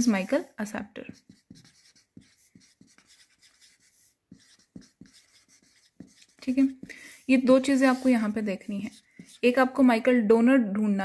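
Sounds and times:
marker writing on whiteboard: 0:00.0 - 0:09.7.

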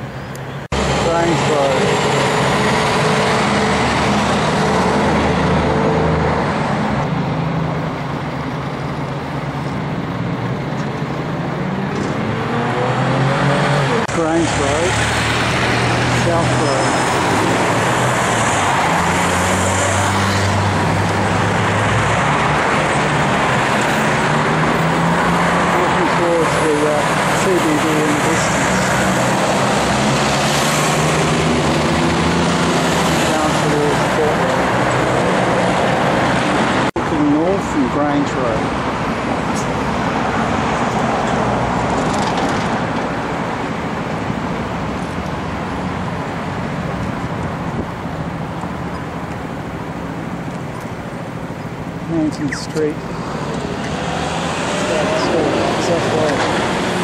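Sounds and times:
road traffic: 0:00.0 - 0:57.0.

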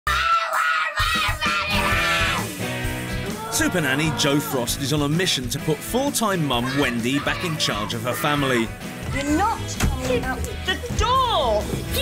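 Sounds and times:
girl screaming: 0:00.1 - 0:02.5
background music with a beat: 0:01.0 - 0:12.0.

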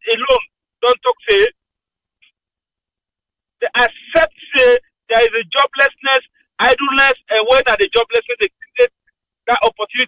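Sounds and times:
person speaking over phone line: 0:00.0 - 0:01.6, 0:03.6 - 0:08.9, 0:09.5 - 0:10.0.

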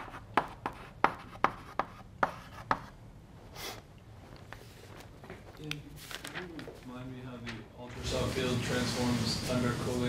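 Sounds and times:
chalk tapping on blackboard: 0:00.0 - 0:03.0
paper rustling: 0:05.9 - 0:07.6.

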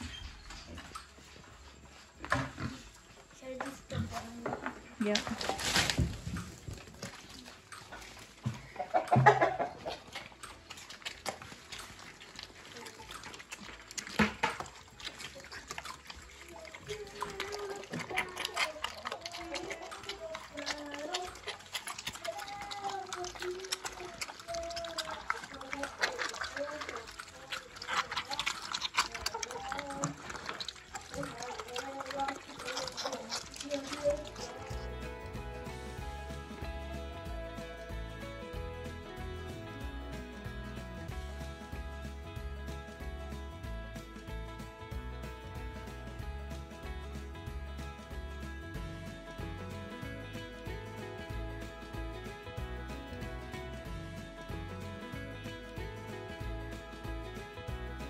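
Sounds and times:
music: 0:00.0 - 0:58.0
pigs chewing and smacking: 0:00.0 - 0:58.0.

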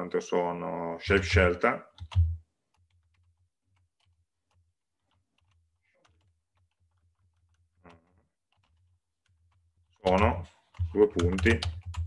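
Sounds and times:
keyboard typing: 0:01.9 - 0:12.0.

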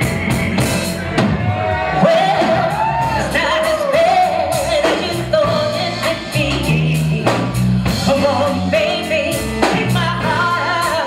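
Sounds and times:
drums: 0:00.0 - 0:11.0
electric bass: 0:00.0 - 0:11.0
live soul band playing: 0:00.0 - 0:11.0
woman singing: 0:02.0 - 0:11.0.

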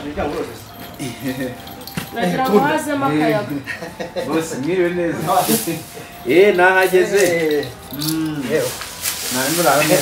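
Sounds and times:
steady hiss: 0:06.8 - 0:10.0.

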